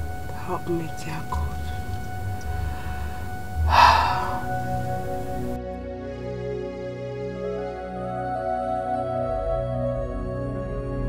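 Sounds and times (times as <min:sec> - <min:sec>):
soft background music: 0:00.0 - 0:11.0
woman gasping and sobbing: 0:02.5 - 0:05.6.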